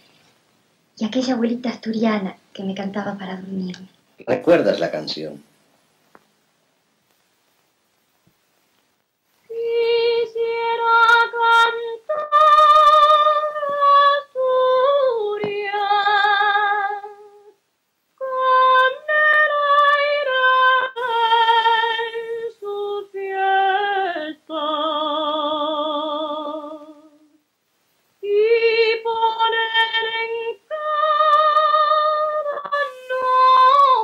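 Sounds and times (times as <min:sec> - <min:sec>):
woman singing unaccompanied: 0:09.5 - 0:17.6, 0:18.2 - 0:27.4, 0:28.2 - 0:34.0.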